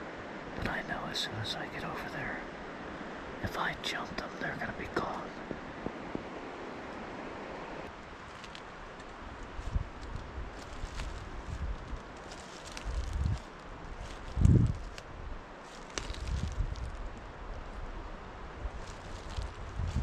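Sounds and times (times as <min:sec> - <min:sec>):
wind buffeting microphone: 0:04.9 - 0:20.0
footsteps crunching on wet leaves: 0:08.1 - 0:17.2, 0:18.7 - 0:20.0.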